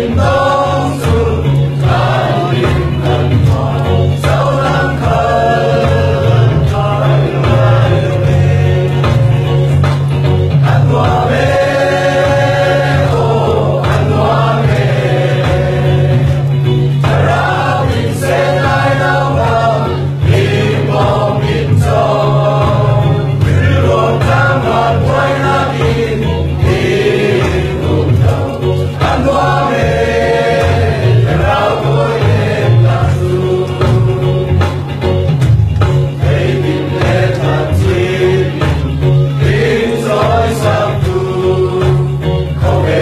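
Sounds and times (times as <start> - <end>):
mixed choir singing: 0.0 - 35.0, 36.0 - 43.0
low steady accompaniment: 0.0 - 43.0.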